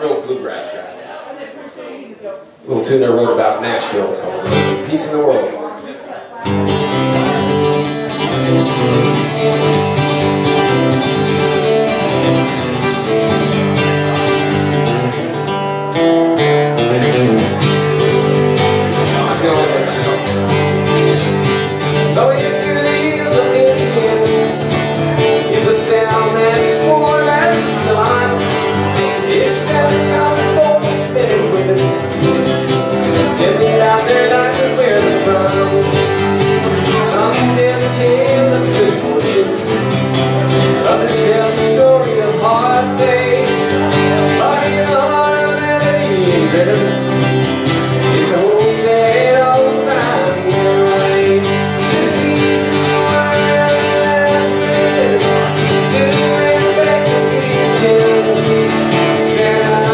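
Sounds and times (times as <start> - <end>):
acoustic guitar strumming: 2.7 - 5.7, 6.4 - 59.9.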